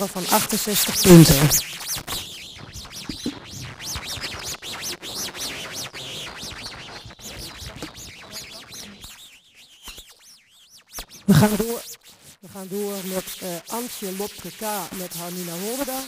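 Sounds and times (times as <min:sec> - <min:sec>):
small birds chirping: 0:02.8 - 0:03.4.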